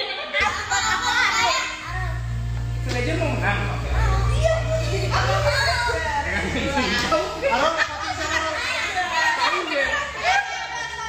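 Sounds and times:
adults and children chattering: 0.0s - 11.0s.

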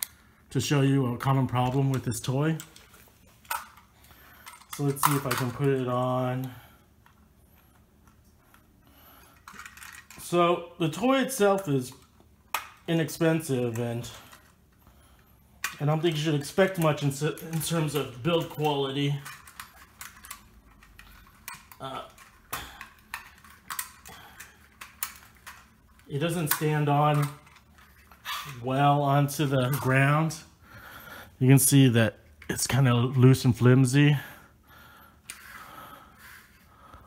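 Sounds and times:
plastic toy parts clicking: 4.4s - 5.6s, 9.4s - 10.2s, 16.7s - 28.2s.

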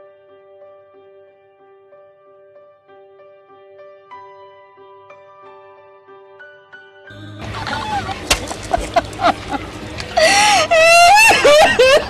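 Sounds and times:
woman wailing in grief: 7.1s - 12.0s.

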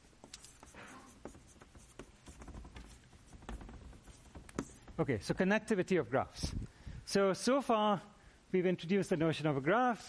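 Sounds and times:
chalk tapping and scratching: 0.0s - 5.5s.

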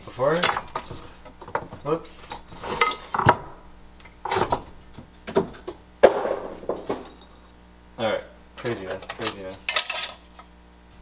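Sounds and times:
objects clattering on wooden shelf: 0.4s - 3.6s, 4.2s - 7.3s, 8.6s - 10.4s.

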